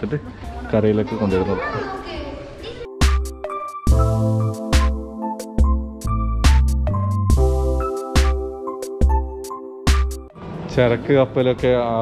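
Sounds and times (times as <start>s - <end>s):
people talking: 0.0s - 2.9s, 10.7s - 12.0s
children's voices: 1.0s - 3.0s.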